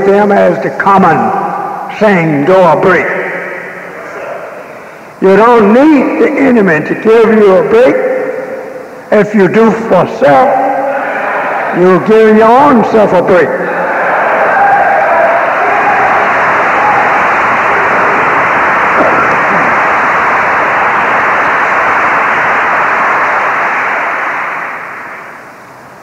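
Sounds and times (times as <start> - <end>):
muffled audience applause: 13.6 - 25.6.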